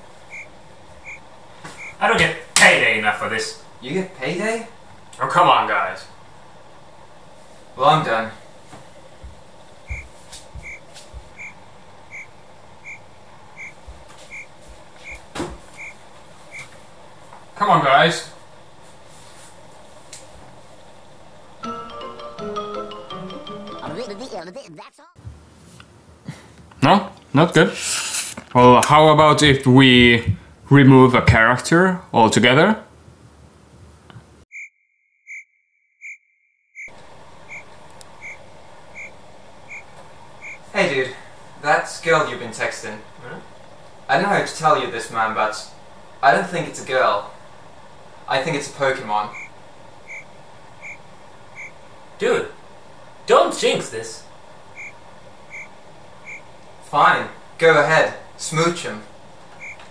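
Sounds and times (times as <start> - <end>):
crickets chirping: 0.2 - 2.0, 9.9 - 16.7, 36.8 - 40.7, 49.3 - 51.8, 54.7 - 56.5, 59.6 - 59.9
soft low thumps: 9.2 - 13.0
short high chirp: 59.6 - 59.8.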